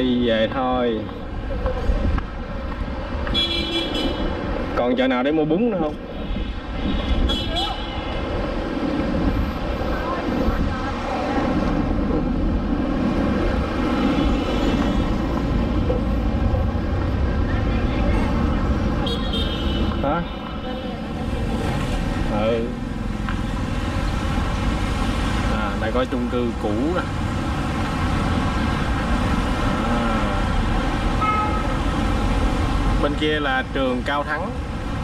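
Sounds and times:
motorbikes and cars passing: 0.0s - 35.0s.

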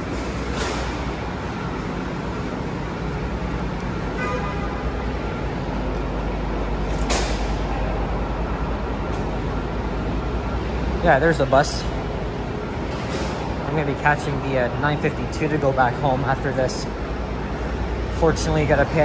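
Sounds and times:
traffic engine rumble: 0.0s - 19.0s.

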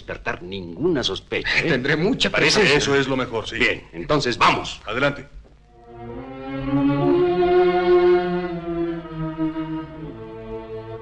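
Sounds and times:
bowed strings film music: 5.6s - 11.0s.

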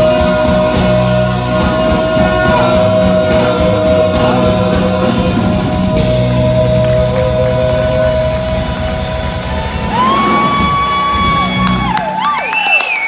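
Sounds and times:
live band playing: 0.0s - 12.8s
audience whooping: 6.0s - 13.0s
audience clapping: 6.1s - 13.0s.

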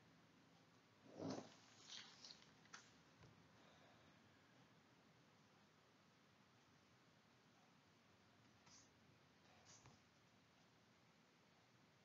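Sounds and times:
paper crinkling: 1.5s - 3.0s.

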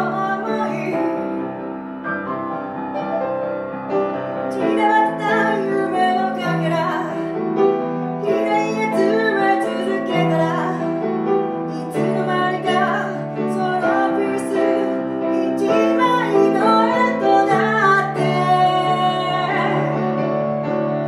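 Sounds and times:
woman singing: 0.0s - 1.4s, 4.5s - 7.4s, 8.2s - 11.1s, 11.7s - 20.2s
grand piano chords: 0.0s - 21.0s.

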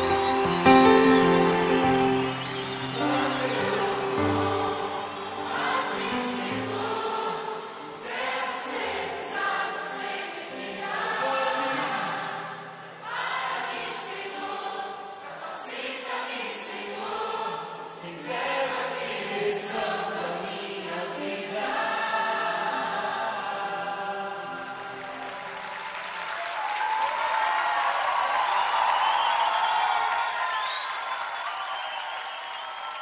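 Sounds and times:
band playing: 0.0s - 7.2s
voices singing in harmony: 0.0s - 25.5s.

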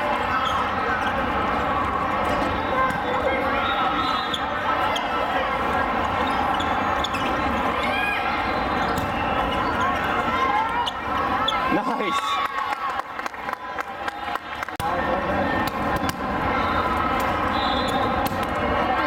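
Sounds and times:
sneakers squealing on court: 0.3s - 1.3s, 2.6s - 5.3s, 6.0s - 11.8s, 16.0s - 18.4s
overlapping voices in a hall: 12.2s - 15.2s.

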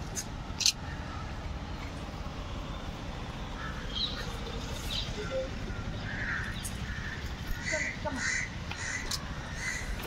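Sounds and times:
crow cawing: 3.6s - 4.0s, 5.7s - 10.0s.

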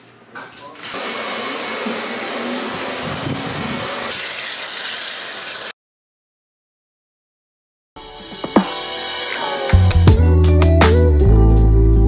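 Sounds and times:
hair-styling tool hissing: 1.0s - 5.7s.

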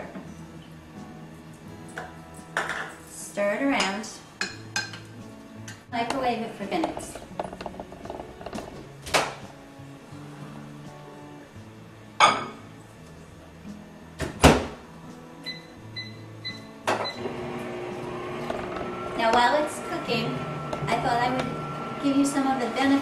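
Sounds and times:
microwave oven humming: 15.5s - 23.0s.

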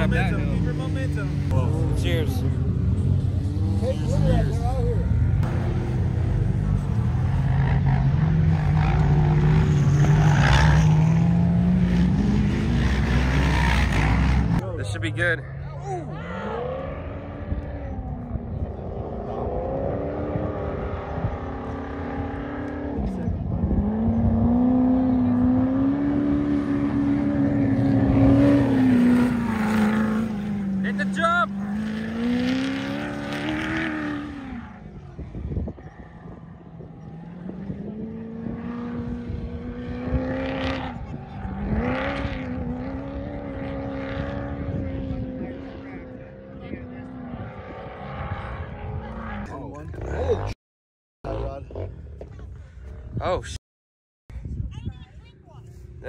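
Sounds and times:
engine revving under throttle: 3.0s - 14.6s, 16.1s - 50.6s.

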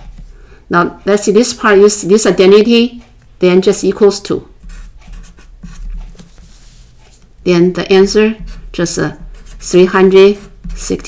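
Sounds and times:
marker writing on paper: 3.7s - 11.0s.

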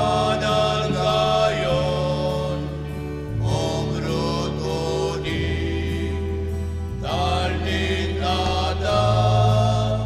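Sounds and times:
hymn singing: 0.0s - 10.0s.

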